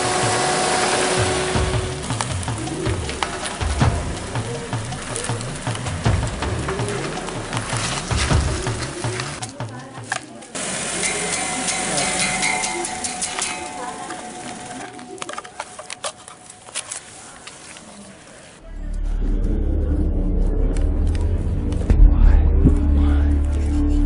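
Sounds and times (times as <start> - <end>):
music with deep bass: 0.0 - 9.8, 18.6 - 24.0
outdoor ambience: 0.0 - 24.0.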